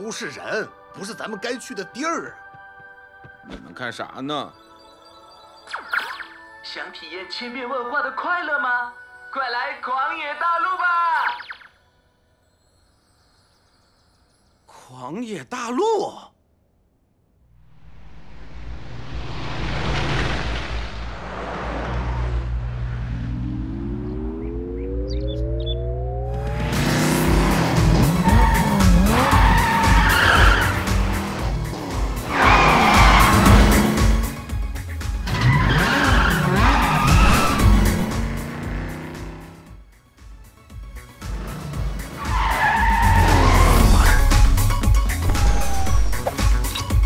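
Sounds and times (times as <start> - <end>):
swelling whoosh: 17.6 - 24.9
upbeat music track: 24.2 - 47.0
sports car engine revving: 26.3 - 34.4, 35.7 - 39.7
tyres squealing: 27.6 - 34.0, 35.2 - 38.4, 42.1 - 44.5.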